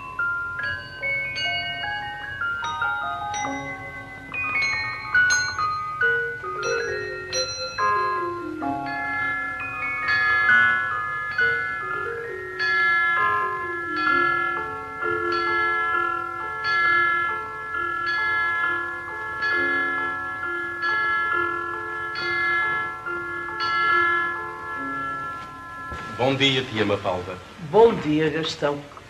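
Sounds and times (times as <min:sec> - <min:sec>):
lower bell-like notes: 0:00.0 - 0:27.3
bell-like melody: 0:00.0 - 0:27.4.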